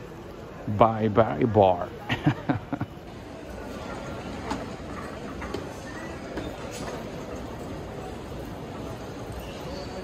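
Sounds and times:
terminal hall background noise: 0:00.0 - 0:10.0.

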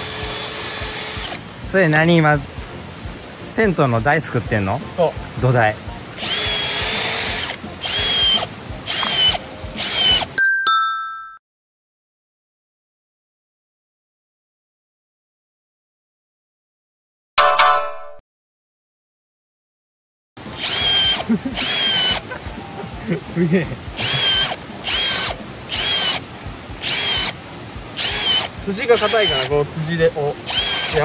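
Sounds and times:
cordless drill whine: 0:00.0 - 0:01.4, 0:06.2 - 0:10.4, 0:20.5 - 0:22.2, 0:24.0 - 0:26.2, 0:26.8 - 0:27.4, 0:28.0 - 0:29.5, 0:30.5 - 0:31.0
short chiming tones: 0:10.4 - 0:11.4.

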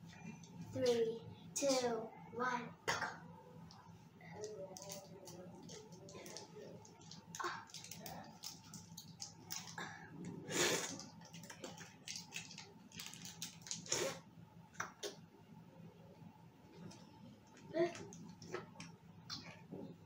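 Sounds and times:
plastic wrappers crinkling: 0:04.3 - 0:10.0, 0:10.8 - 0:14.2.

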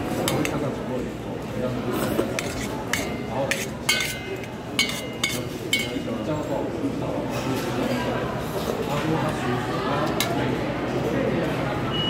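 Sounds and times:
metal utensils clinking on steel bowls: 0:00.2 - 0:00.7, 0:02.0 - 0:06.6.

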